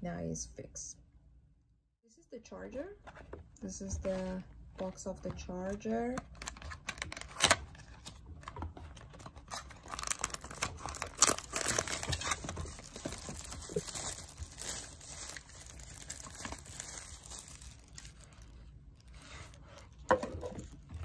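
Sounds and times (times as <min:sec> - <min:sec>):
packaging rustling and crinkling: 0:06.3 - 0:21.0.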